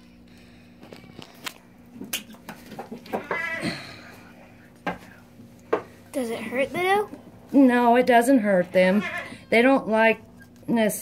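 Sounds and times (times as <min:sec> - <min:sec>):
goat bleating: 0:03.2 - 0:03.8, 0:08.8 - 0:09.5.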